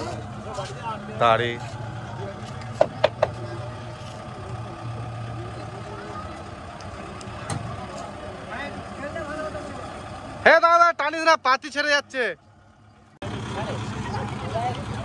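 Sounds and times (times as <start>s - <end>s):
onlookers chattering: 0.0s - 15.0s
tractor diesel engine idling: 0.0s - 15.0s.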